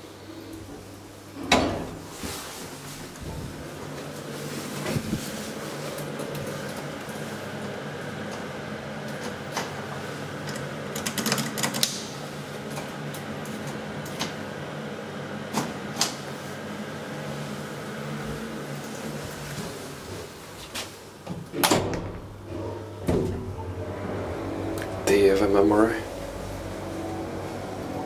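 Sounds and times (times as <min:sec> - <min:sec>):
elevator hum: 0:00.0 - 0:28.0
elevator doors clattering open: 0:01.3 - 0:02.1, 0:21.4 - 0:28.0.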